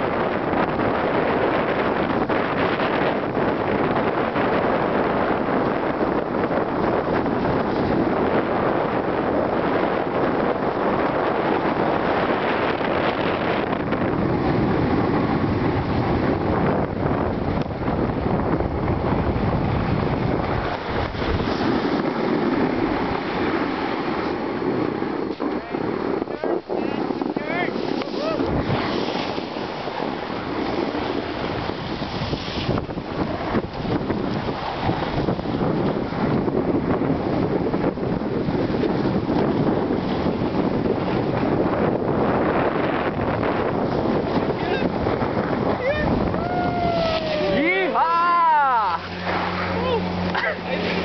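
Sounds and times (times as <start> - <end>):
wind rushing over microphone: 0.0 - 51.0
snow scraping under a rider: 20.6 - 24.9, 26.0 - 36.4.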